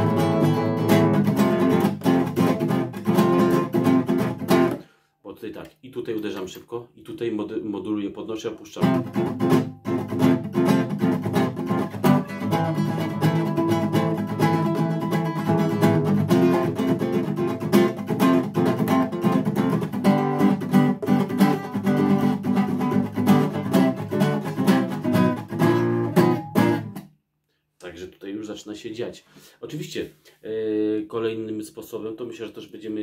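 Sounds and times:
nylon-string guitar strumming: 0.0s - 4.9s, 8.8s - 27.0s.

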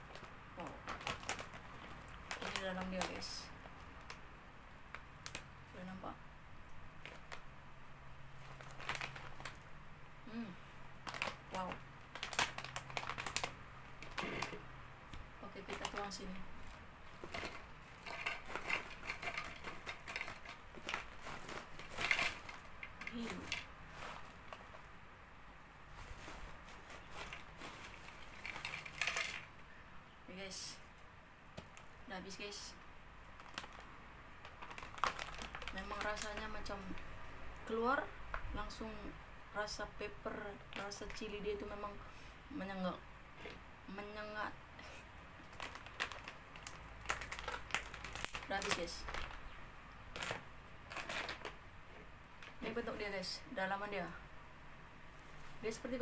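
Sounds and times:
foil chip bag crinkling: 0.0s - 4.2s, 7.0s - 7.5s, 8.3s - 9.8s, 11.0s - 14.7s, 15.4s - 24.9s, 25.9s - 29.6s, 33.2s - 37.1s, 40.7s - 41.7s, 44.8s - 51.6s
chips clattering onto ceramic plate: 17.2s - 21.2s, 28.2s - 29.5s.

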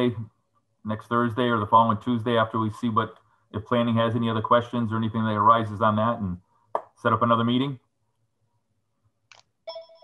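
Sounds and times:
electronic telephone ringing: 9.7s - 10.0s.

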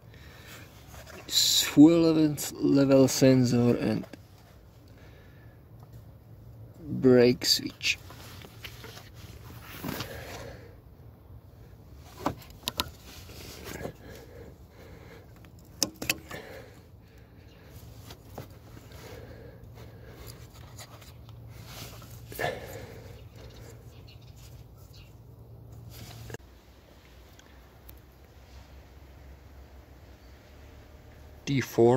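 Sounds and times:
steady low hum: 0.0s - 31.5s
rustling: 8.0s - 10.6s, 17.6s - 26.4s.

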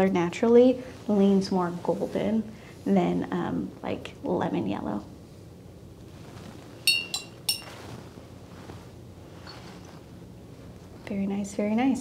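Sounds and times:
paintbrush clinking on glass jar: 6.8s - 7.8s.

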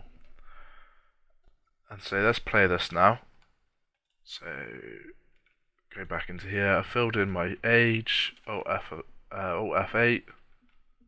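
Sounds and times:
soft breath into microphone: 0.2s - 1.2s.

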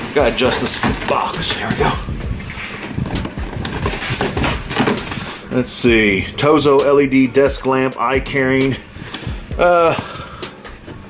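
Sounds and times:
cardboard scraping and rustling: 0.0s - 5.7s
dull low knocks: 0.9s - 5.1s.

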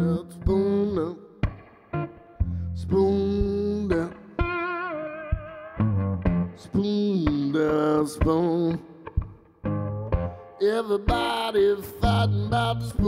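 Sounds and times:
slide guitar blues: 0.0s - 13.0s.

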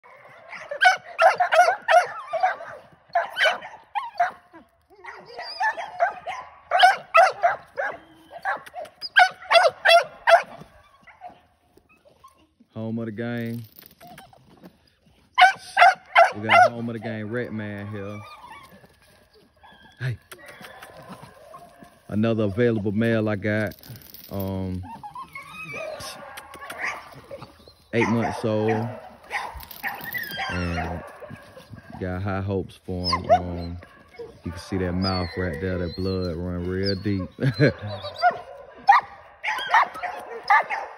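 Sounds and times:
dog barking: 0.0s - 4.4s, 5.0s - 11.4s, 15.4s - 16.8s, 25.8s - 27.1s, 28.0s - 32.0s, 37.8s - 40.9s.

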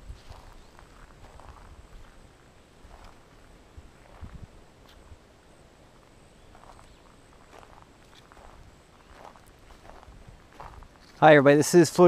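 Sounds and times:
footsteps on sandy forest path: 0.0s - 5.2s, 5.9s - 12.0s.

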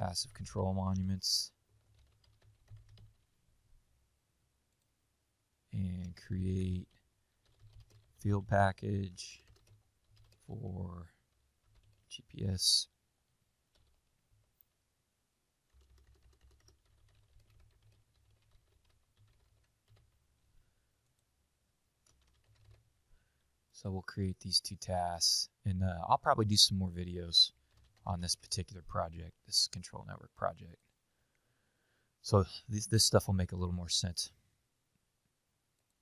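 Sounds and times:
faint keyboard typing: 0.0s - 3.4s, 5.9s - 12.5s, 13.7s - 14.7s, 15.6s - 21.3s, 22.0s - 23.5s, 27.4s - 28.7s
typing on computer keyboard: 1.8s - 3.3s, 7.4s - 8.2s, 9.4s - 10.5s, 11.6s - 12.1s, 13.7s - 14.0s, 15.7s - 20.2s, 22.0s - 22.8s, 27.6s - 28.0s.

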